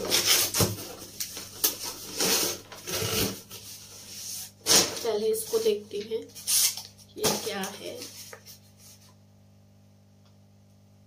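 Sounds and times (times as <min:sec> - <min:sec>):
cardboard rubbing and scraping: 0:00.0 - 0:05.1.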